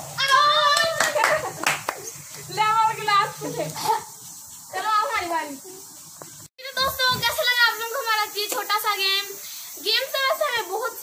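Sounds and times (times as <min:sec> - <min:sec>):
hand claps: 0:00.3 - 0:02.1.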